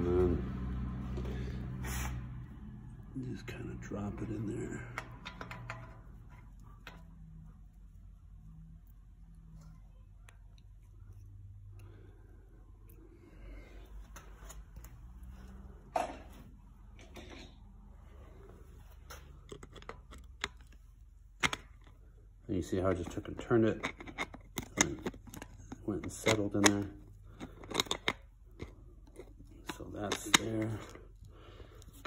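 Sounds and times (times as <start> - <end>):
low steady hum: 0.0 - 32.0.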